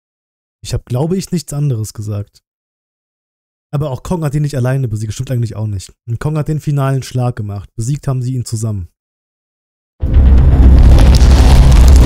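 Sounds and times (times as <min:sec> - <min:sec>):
cinematic music: 0:10.0 - 0:12.0
crackling: 0:10.0 - 0:12.0
deep booming rumble: 0:10.0 - 0:12.0.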